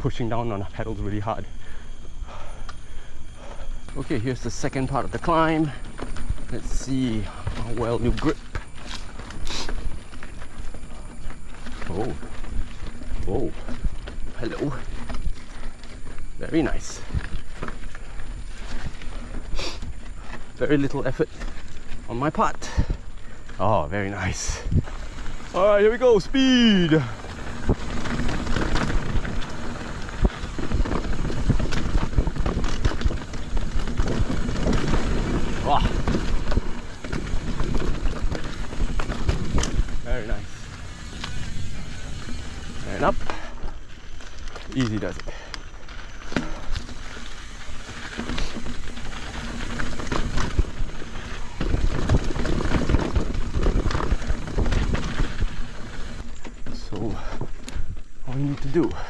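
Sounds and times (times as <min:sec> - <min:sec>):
bike rattling and knocking: 0:00.0 - 0:59.0
tyres rolling over dirt: 0:00.0 - 0:59.0
wind rushing over microphone: 0:23.7 - 0:43.3.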